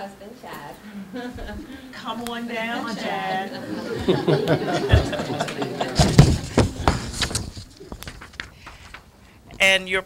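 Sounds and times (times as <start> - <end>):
papers rustling: 5.8 - 9.1
microphone handling knocks: 6.0 - 9.0.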